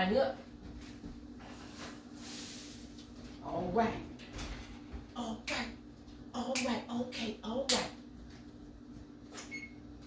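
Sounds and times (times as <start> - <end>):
appliance humming: 0.0 - 10.0.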